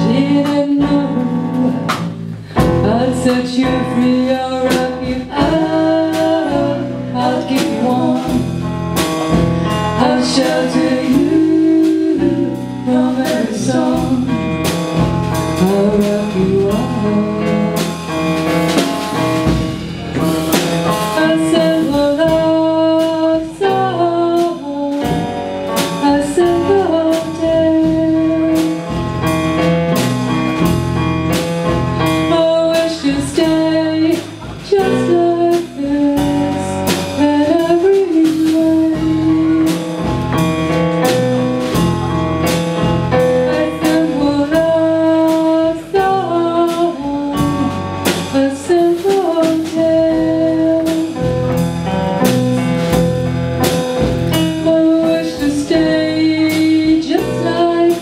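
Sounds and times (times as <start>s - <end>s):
live pop-rock band playing: 0.0s - 58.0s.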